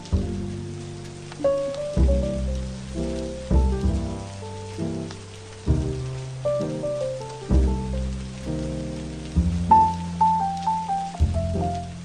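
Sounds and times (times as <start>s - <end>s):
jazz music: 0.0s - 12.0s
rain falling: 0.0s - 12.0s.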